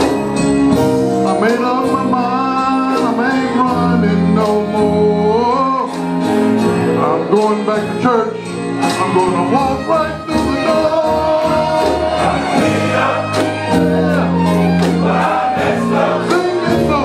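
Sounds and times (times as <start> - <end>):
held chords: 0.0 - 17.0
man singing gospel: 1.2 - 6.1, 6.8 - 17.0.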